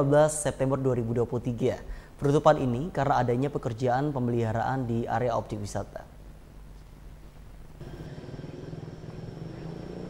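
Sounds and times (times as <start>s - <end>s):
car engine rumble: 7.7s - 10.0s.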